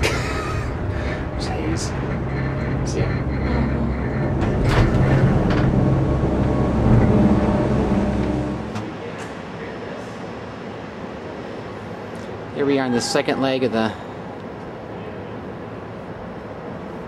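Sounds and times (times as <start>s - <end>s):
low machinery hum: 0.0s - 17.0s.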